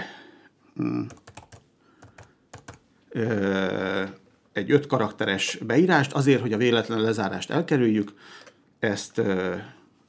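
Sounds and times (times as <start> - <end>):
short vocal sound: 0.7 - 1.2
typing on computer keyboard: 1.0 - 2.8.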